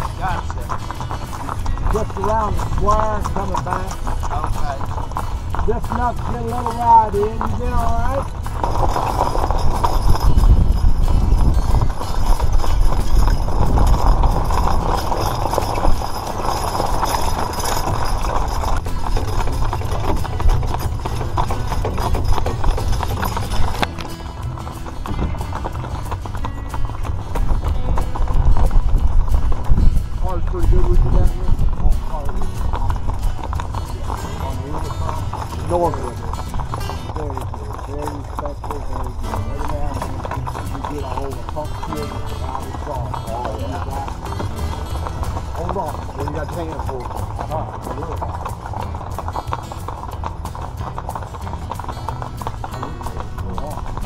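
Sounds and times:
mule hooves clip-clopping: 0:00.0 - 0:54.0.

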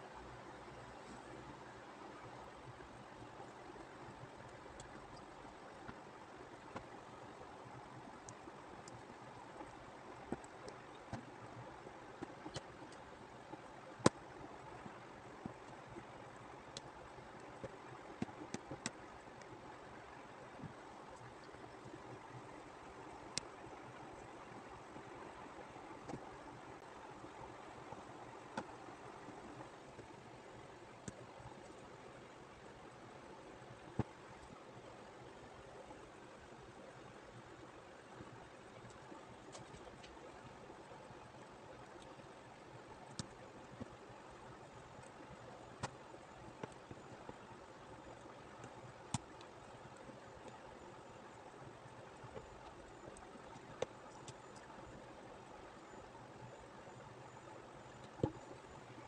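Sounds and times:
faint steady hiss: 0:00.0 - 0:59.0.

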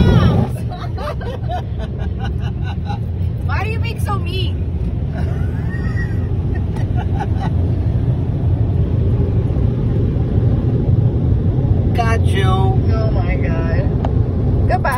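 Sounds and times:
car wash machinery rumble: 0:00.0 - 0:14.9.

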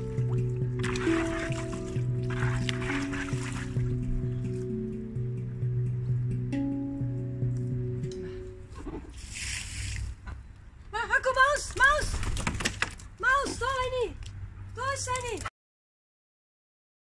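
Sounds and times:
water poured from bucket: 0:00.0 - 0:03.9, 0:09.1 - 0:10.2
handpan music: 0:00.0 - 0:08.9.

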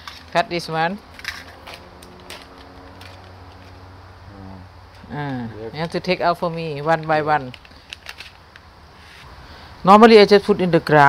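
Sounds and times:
paper packets clicking and rustling: 0:01.1 - 0:03.8, 0:05.8 - 0:08.7.

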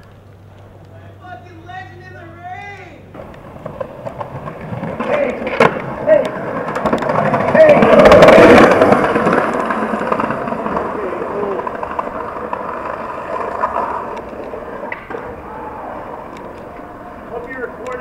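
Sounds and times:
skateboard wheels rolling: 0:03.1 - 0:18.0.

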